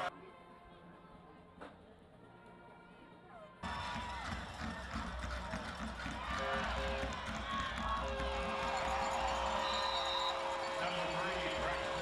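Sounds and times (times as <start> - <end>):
stadium crowd voices: 0.0 - 12.0
short high whistle: 9.6 - 10.9.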